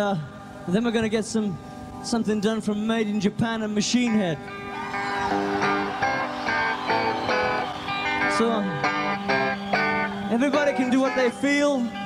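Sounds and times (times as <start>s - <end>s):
electric guitar single notes: 3.8s - 12.0s.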